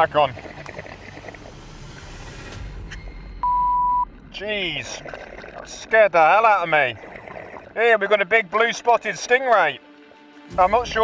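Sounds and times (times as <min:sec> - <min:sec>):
low underwater rumble: 0:00.0 - 0:07.8.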